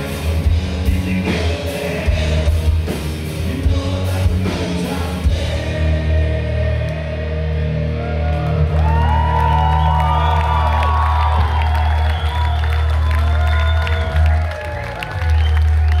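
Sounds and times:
rock band on a pa: 0:00.0 - 0:16.0.

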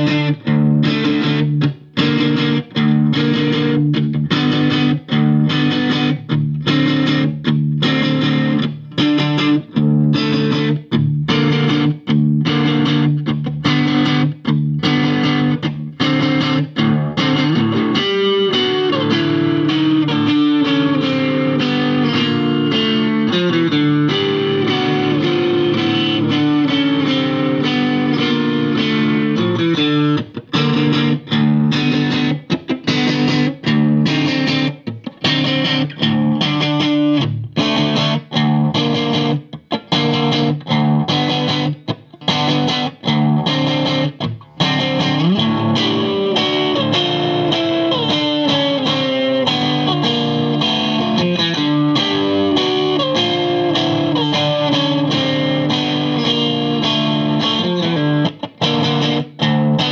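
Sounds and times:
electric guitar chords: 0:00.0 - 0:59.9.

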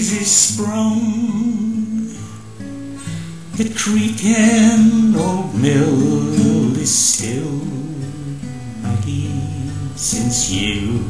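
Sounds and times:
acoustic guitar strumming: 0:00.0 - 0:11.0
man singing held note: 0:03.7 - 0:11.0.

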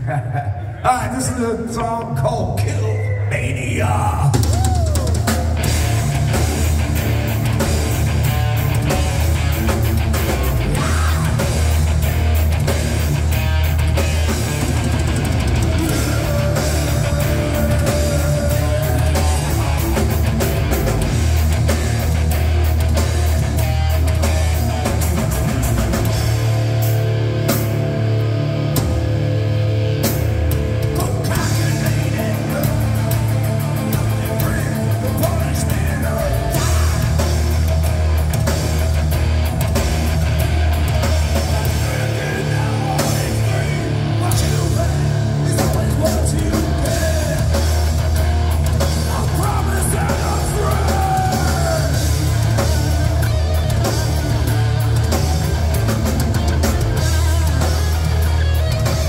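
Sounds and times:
heavy metal band playing: 0:00.0 - 0:59.0.

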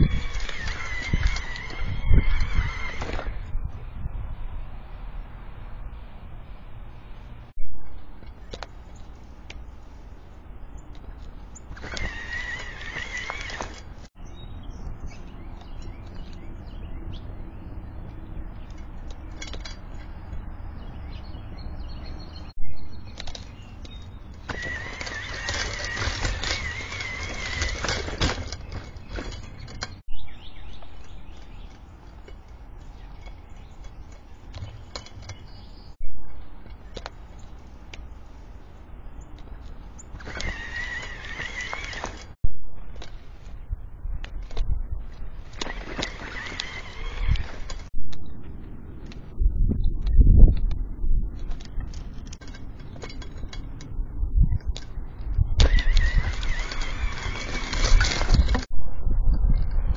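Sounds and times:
electric motor whining: 0:00.0 - 0:03.5, 0:11.8 - 0:14.0, 0:24.4 - 0:29.8, 0:40.2 - 0:42.4, 0:45.5 - 0:47.9, 0:55.6 - 0:58.7.

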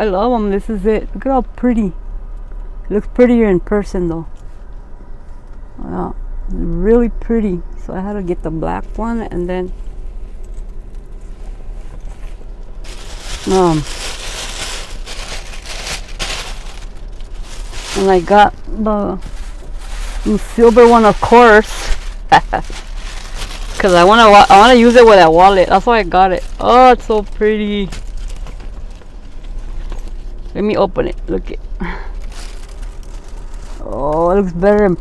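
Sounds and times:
low steady hum: 0:00.0 - 0:35.0
plastic bag rustling: 0:09.6 - 0:30.6, 0:31.6 - 0:35.0.

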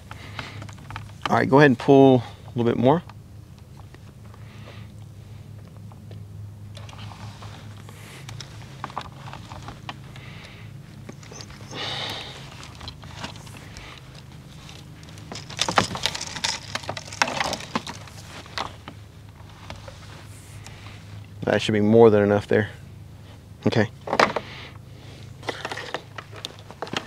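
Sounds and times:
sharp clicks and rattles: 0:07.8 - 0:19.9, 0:25.4 - 0:27.0.

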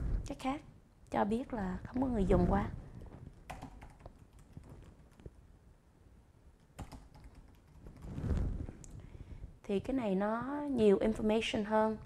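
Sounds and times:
keyboard typing: 0:03.3 - 0:05.4, 0:06.6 - 0:08.1.

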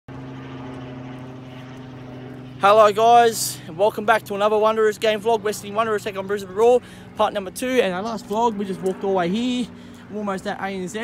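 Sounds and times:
engine humming: 0:00.1 - 0:11.0.

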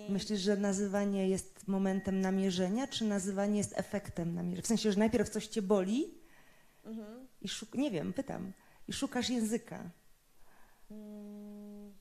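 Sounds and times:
woman humming: 0:06.9 - 0:07.3, 0:10.9 - 0:12.0.

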